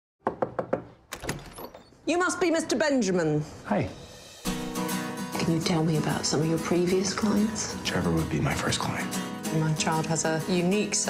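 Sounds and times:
knocks on a door: 0.2s - 1.4s
door opening: 0.6s - 2.0s.

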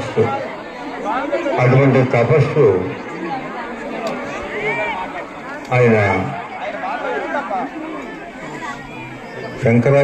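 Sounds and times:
crowd chatter: 0.0s - 10.0s
man talking into a microphone: 1.1s - 3.0s, 5.7s - 6.4s, 9.5s - 10.0s.

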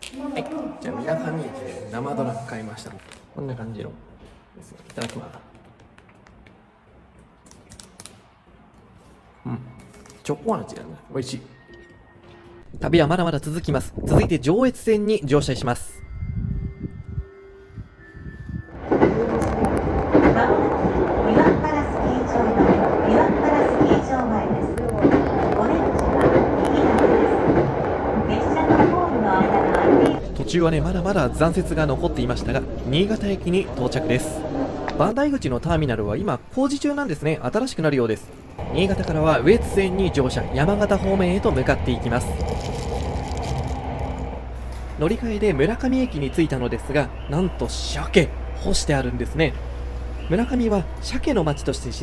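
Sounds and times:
train running on rails: 15.4s - 35.8s, 38.0s - 52.0s.

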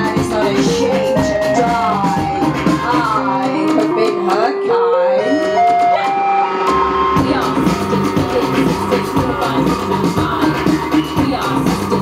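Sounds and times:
deep bass and beat: 0.0s - 4.4s, 5.2s - 12.0s
synthesizer notes: 0.0s - 12.0s.

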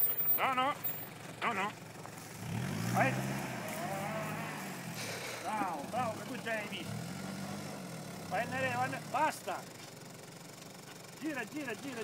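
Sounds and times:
suv engine revving: 0.0s - 11.2s.

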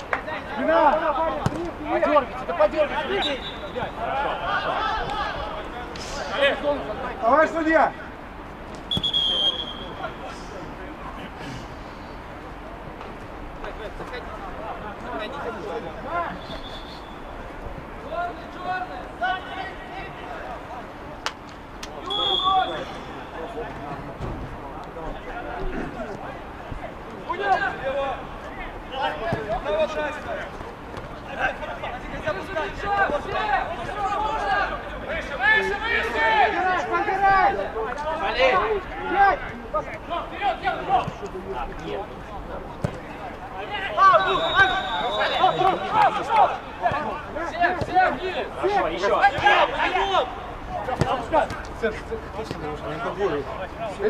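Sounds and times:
men calling and shouting: 0.0s - 54.0s.

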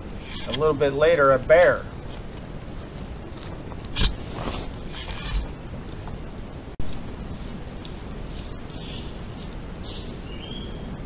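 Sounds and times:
bear scraping and crunching: 0.2s - 0.7s, 2.0s - 6.1s.

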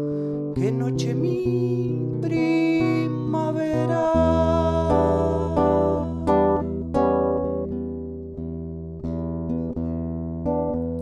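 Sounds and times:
fingerpicked classical guitar: 0.0s - 11.0s.

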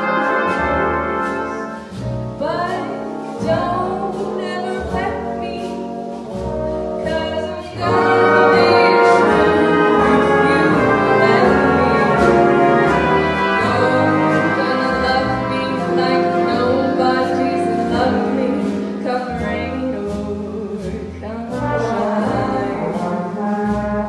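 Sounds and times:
big band playing: 0.0s - 24.0s
woman singing jazz ballad: 0.0s - 24.0s.

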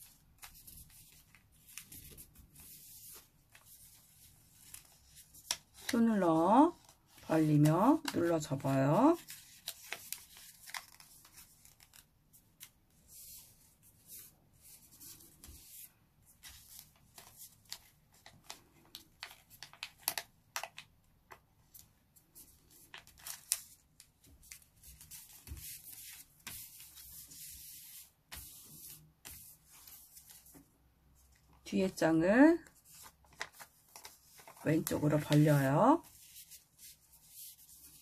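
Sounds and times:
paper rustling and creasing: 0.0s - 20.9s, 21.7s - 31.6s, 32.6s - 38.0s.

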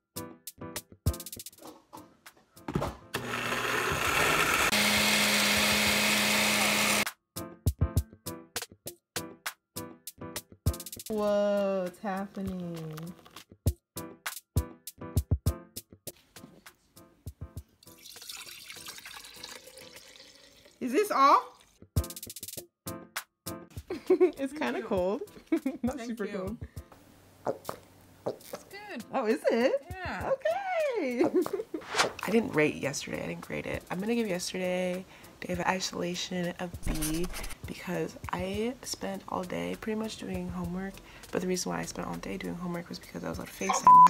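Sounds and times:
background music with a beat: 0.0s - 2.3s, 7.1s - 12.6s, 13.7s - 17.7s, 22.0s - 27.0s, 29.7s - 30.5s
blender motor whirring: 3.2s - 7.1s
liquid pouring into glass jar: 17.8s - 20.8s.

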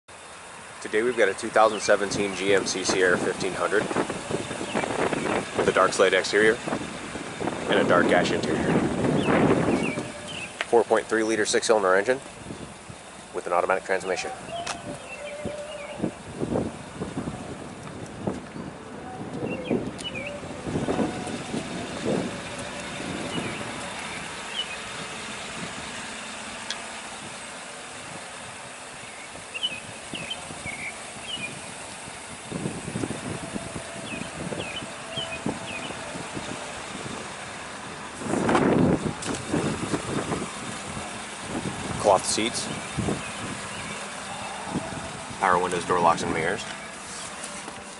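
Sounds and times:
vehicle running: 0.1s - 47.9s.

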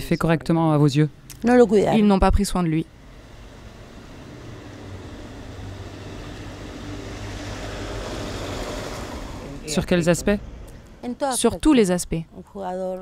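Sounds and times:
road vehicle approaching: 0.8s - 13.0s.

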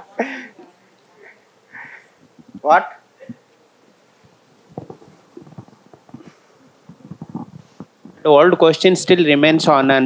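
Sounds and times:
clothing rubbing on microphone: 1.7s - 8.5s.

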